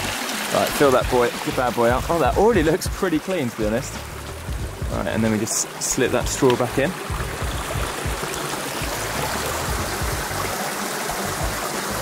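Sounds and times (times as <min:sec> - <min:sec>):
creek trickling: 0:00.0 - 0:12.0.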